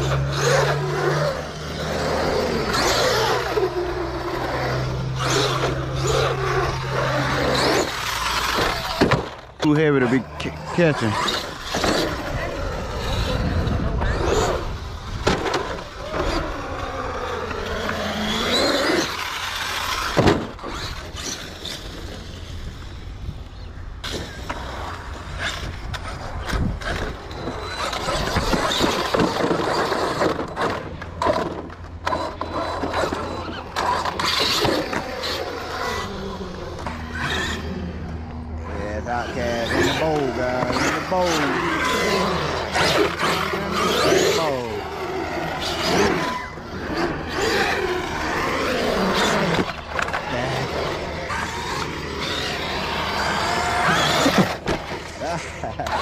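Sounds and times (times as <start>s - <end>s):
electric motor whining: 0.0s - 56.0s.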